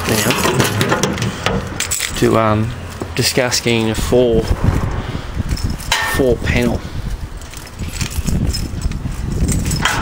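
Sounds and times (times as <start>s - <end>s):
man speaking: 2.2s - 4.6s, 6.1s - 6.9s.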